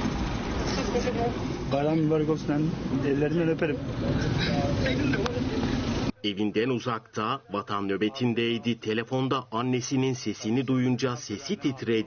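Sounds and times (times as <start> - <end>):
outdoor background rumble: 0.0 - 6.2.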